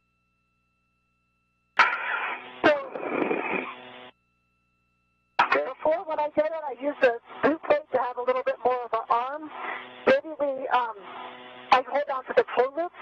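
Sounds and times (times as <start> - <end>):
muffled radio speech: 1.8 - 3.8, 5.4 - 11.1, 11.7 - 13.0.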